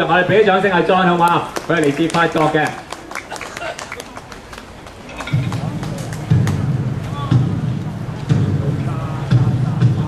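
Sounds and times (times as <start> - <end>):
crowd clapping: 1.2 - 6.7
low rapid drumming: 4.7 - 10.0.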